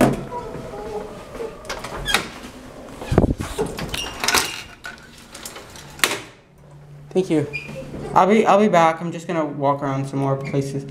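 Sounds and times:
elevator scissor gate rattling: 3.7 - 6.1.

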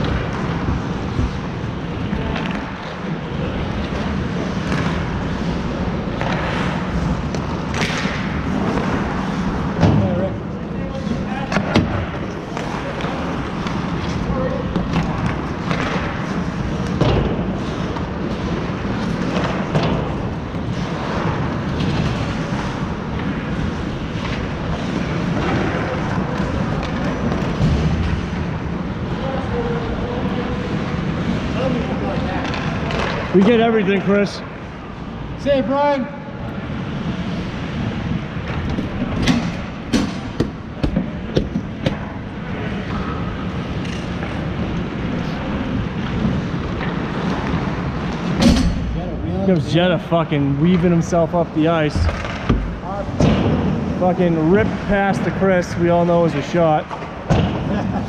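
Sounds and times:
skates on ice: 0.0 - 34.4, 49.4 - 58.0.

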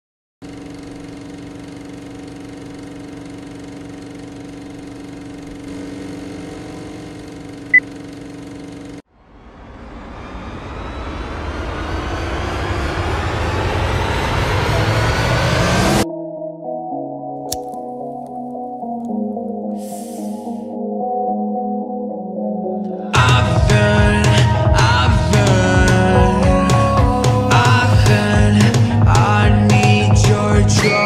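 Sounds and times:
noisy rising swell: 9.1 - 16.1.

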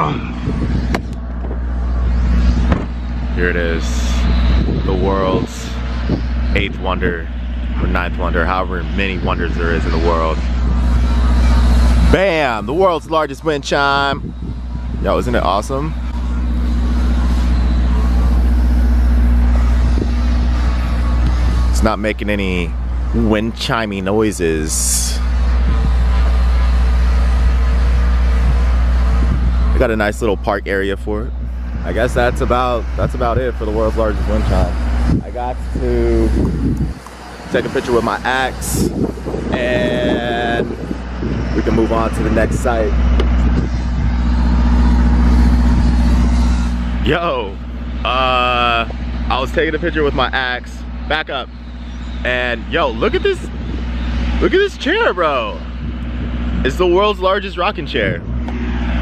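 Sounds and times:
motor vehicle engine running: 0.0 - 59.0.

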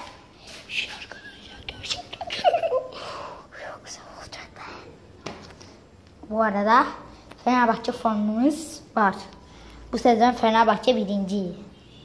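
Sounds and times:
boy whispering: 0.3 - 2.4, 3.4 - 5.1.

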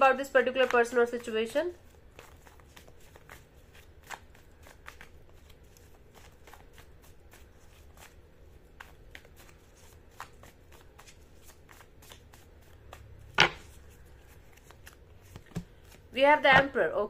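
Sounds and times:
cards being shuffled: 0.1 - 16.7.

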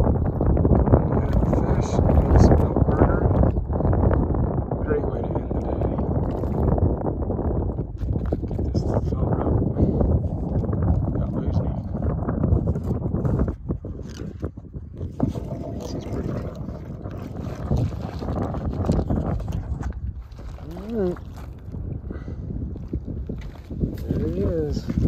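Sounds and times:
wind buffeting microphone: 0.0 - 25.0
water lapping on stony shore: 14.9 - 22.0.

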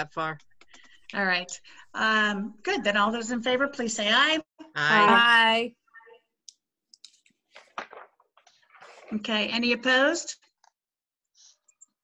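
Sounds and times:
person saying a word: 4.8 - 5.4.

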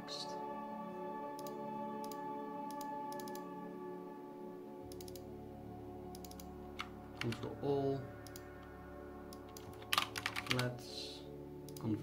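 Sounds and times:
soft background music: 0.0 - 12.0
computer mouse clicks: 1.4 - 3.5, 4.9 - 5.3, 6.1 - 7.4, 8.2 - 8.5, 9.3 - 10.6.

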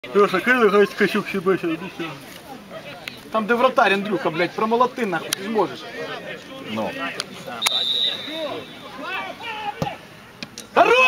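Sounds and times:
referee's whistle: 7.6 - 9.1
men shouting: 8.2 - 10.1.

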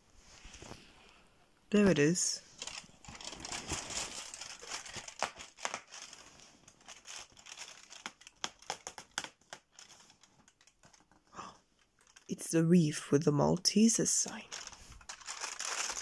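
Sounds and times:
cardboard tearing: 2.6 - 10.0, 14.5 - 16.0
foil tray crinkling: 2.6 - 11.2, 14.4 - 16.0.

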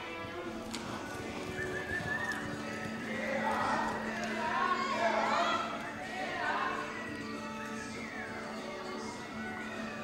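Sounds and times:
music: 0.0 - 10.0
horse hoofbeats on soft dirt: 0.2 - 4.8.

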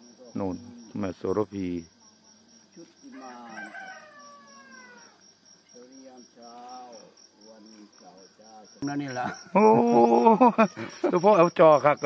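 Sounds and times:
insect trill: 0.0 - 12.0
rooster crowing: 3.1 - 5.2.

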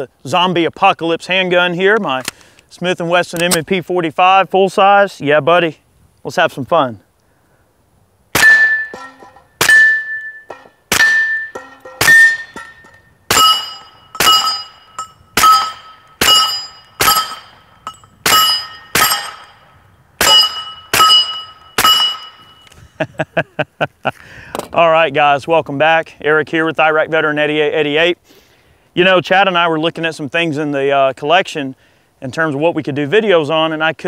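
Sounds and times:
steel target ringing: 8.4 - 22.7.

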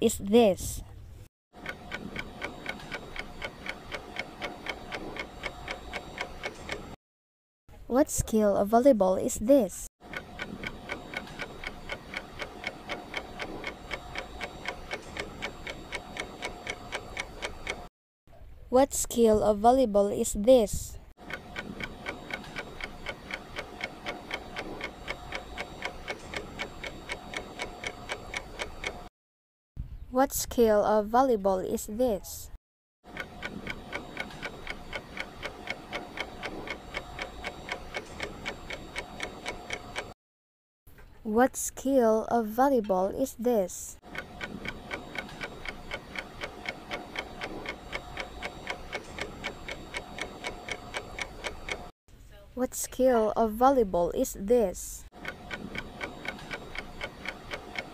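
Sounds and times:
clock ticking: 1.6 - 7.0, 10.1 - 17.9, 21.2 - 29.1, 33.1 - 40.2, 44.0 - 51.9, 54.5 - 57.9.

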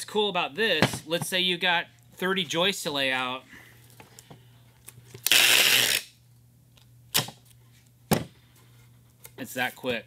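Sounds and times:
tape ripping off tape gun: 5.2 - 6.2.

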